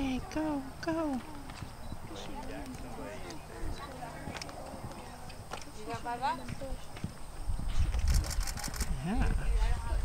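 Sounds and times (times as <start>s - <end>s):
horse hoofbeats on sand: 3.7s - 8.1s.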